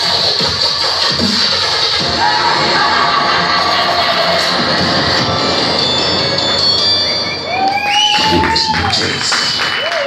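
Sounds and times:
loud dance music: 0.0s - 10.0s
audience cheering and shouting: 7.2s - 10.0s.

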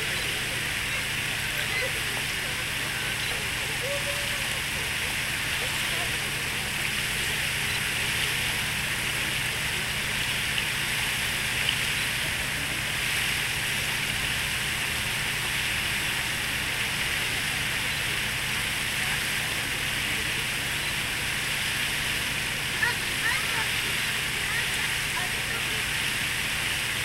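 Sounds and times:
fountain water splashing into basin: 0.0s - 27.0s.

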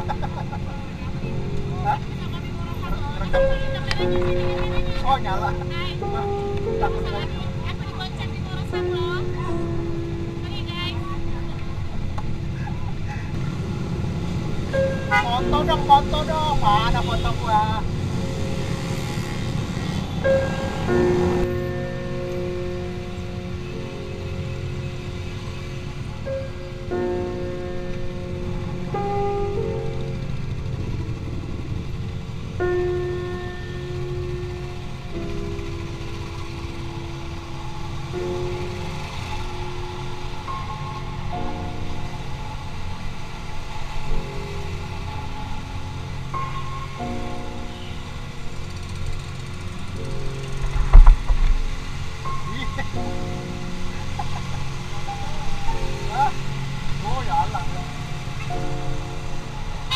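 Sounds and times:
motorcycle engine and road noise: 0.0s - 59.9s
slow melodic music: 0.0s - 59.9s.

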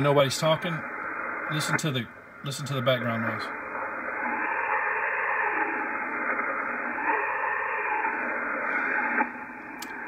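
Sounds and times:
radio receiver hiss: 0.0s - 10.0s.

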